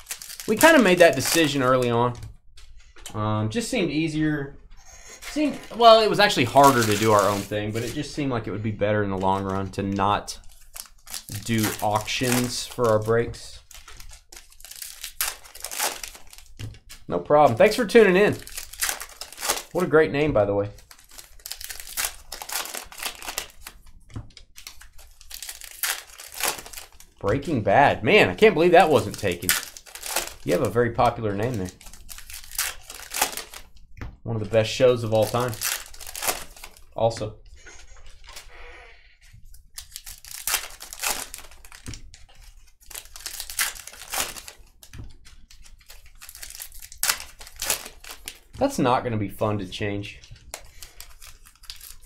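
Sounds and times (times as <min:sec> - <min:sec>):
wrappers crinkling and rustling: 0:00.0 - 0:02.2, 0:05.2 - 0:08.2, 0:09.2 - 0:33.8, 0:34.4 - 0:37.2, 0:37.8 - 0:38.5, 0:39.4 - 0:52.0.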